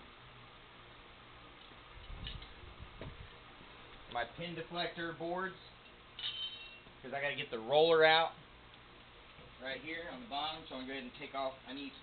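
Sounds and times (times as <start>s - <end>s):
soft low thuds: 2.2s - 3.5s.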